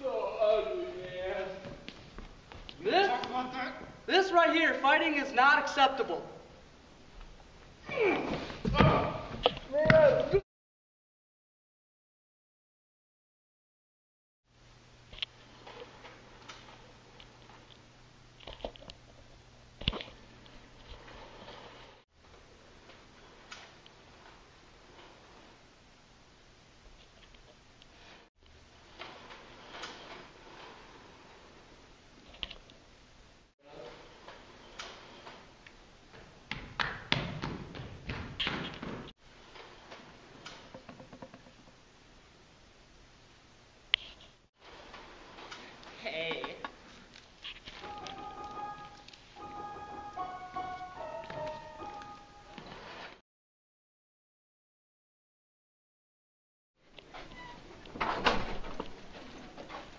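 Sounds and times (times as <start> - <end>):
footsteps on wooden floor: 1.6 - 2.8.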